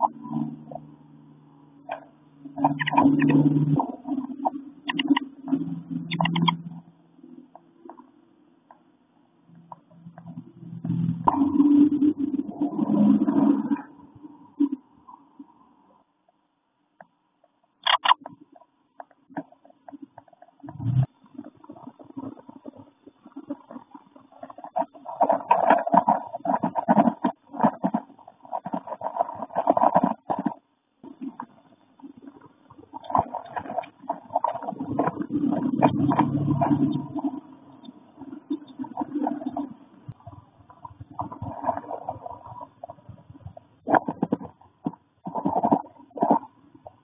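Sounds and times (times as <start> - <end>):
birds rustling and scratching in nest: 21.3 - 46.5.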